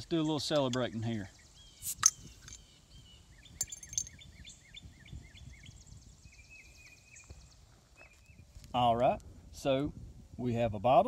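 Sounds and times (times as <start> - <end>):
birds chirping: 0.0 - 8.6
bottle cap popping off: 1.8 - 2.6.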